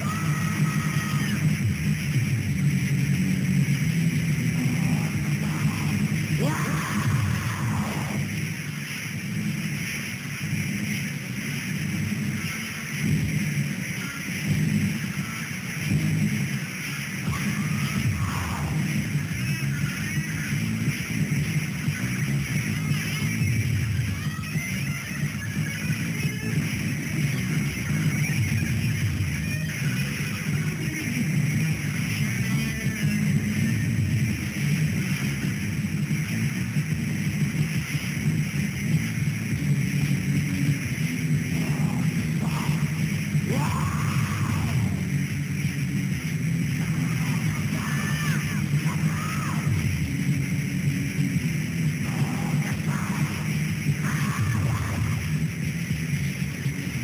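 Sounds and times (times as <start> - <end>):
distorted electric guitars: 0.0 - 57.0.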